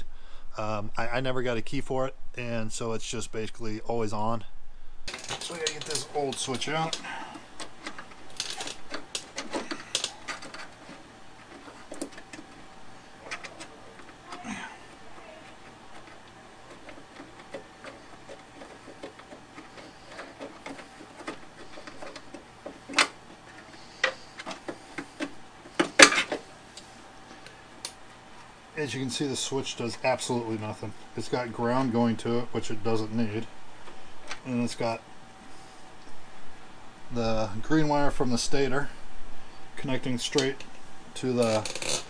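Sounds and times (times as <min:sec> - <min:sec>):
faint steady hum: 0:00.0 - 0:42.0.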